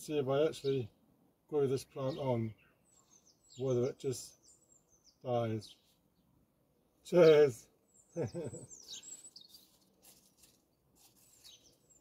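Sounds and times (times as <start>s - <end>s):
birds chirping: 0.0s - 12.0s
man laughing: 8.1s - 9.0s.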